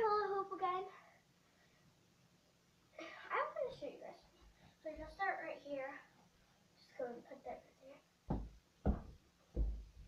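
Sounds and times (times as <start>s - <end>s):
thuds on carpeted floor: 8.3s - 10.0s.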